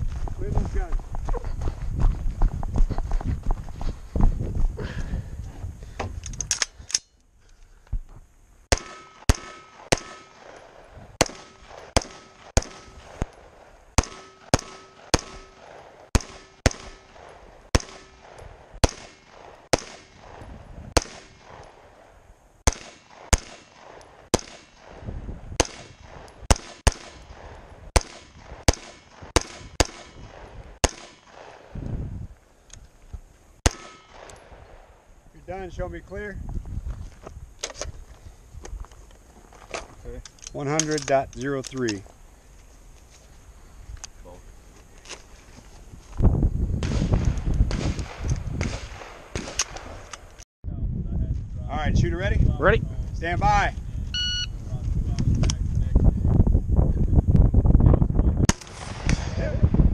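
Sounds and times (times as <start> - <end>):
rifle single shots: 8.7 - 31.8, 33.6 - 35.0, 46.8 - 50.2, 58.5 - 59.7.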